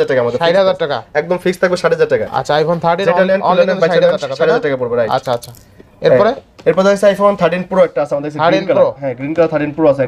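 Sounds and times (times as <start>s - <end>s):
man talking fast: 0.0s - 10.0s.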